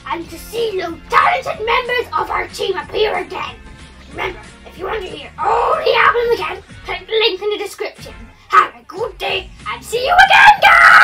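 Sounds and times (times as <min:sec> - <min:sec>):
child shouting and screaming: 0:00.1 - 0:11.0.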